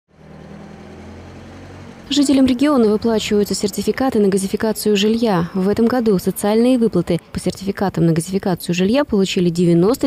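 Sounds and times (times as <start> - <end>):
vehicle engine idling: 0.1 - 7.4.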